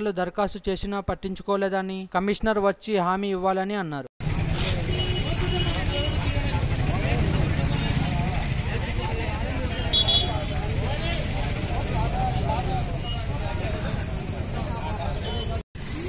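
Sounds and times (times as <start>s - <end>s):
vehicle engine rumbling: 4.2s - 16.0s
faint voices talking: 4.6s - 15.6s.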